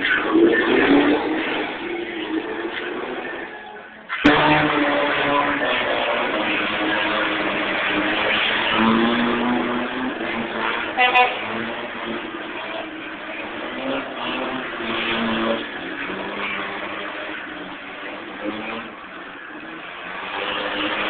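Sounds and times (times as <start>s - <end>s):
car engine revving: 0.0s - 21.0s.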